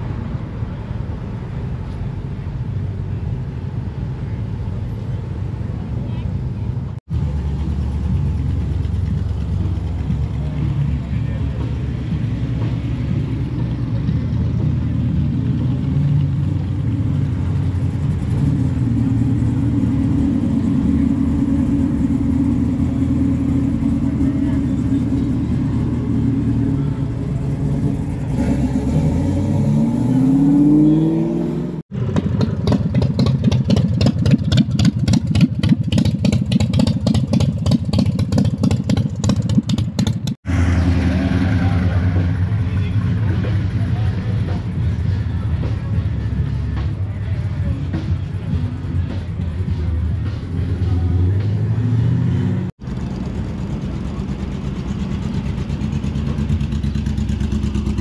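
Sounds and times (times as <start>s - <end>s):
vehicle engine idling and revving: 0.0s - 58.0s
rapid pulsing engine beat: 7.2s - 28.9s, 31.9s - 40.5s, 41.6s - 58.0s.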